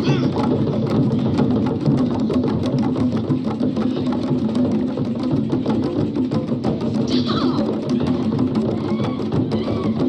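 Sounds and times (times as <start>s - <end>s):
fast hand drumming: 0.0s - 10.0s.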